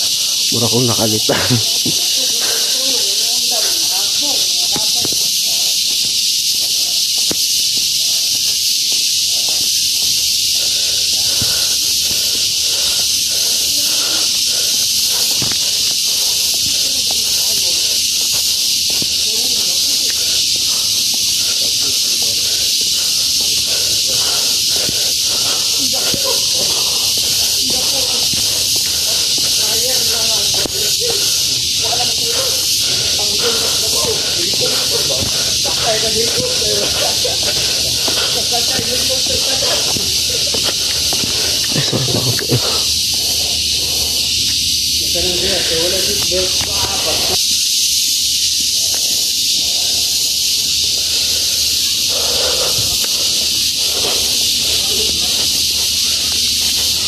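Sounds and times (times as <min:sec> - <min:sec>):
distant voices: 0:00.0 - 0:07.0, 0:09.3 - 0:47.4, 0:51.0 - 0:57.0
footsteps on concrete steps: 0:00.0 - 0:47.4, 0:48.6 - 0:57.0
cicada chorus drone: 0:00.0 - 0:57.0.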